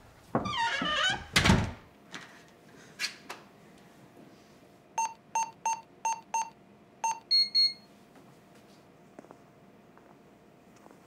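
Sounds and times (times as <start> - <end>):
high double beep: 5.0 - 7.8
keypad beeps: 5.0 - 7.8.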